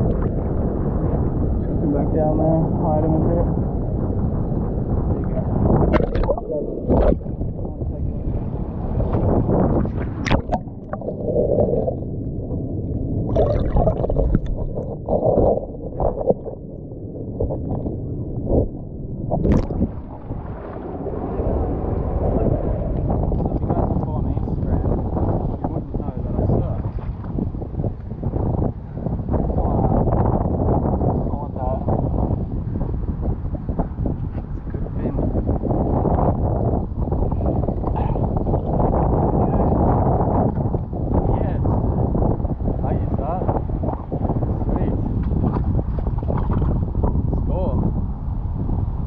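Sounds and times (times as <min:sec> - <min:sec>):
muffled water sloshing: 0:04.3 - 0:29.0, 0:43.6 - 0:47.4.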